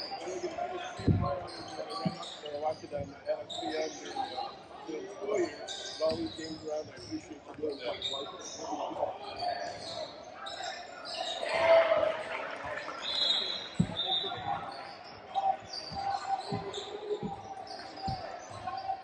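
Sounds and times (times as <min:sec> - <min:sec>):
voices echoing in gym: 0:00.0 - 0:19.0.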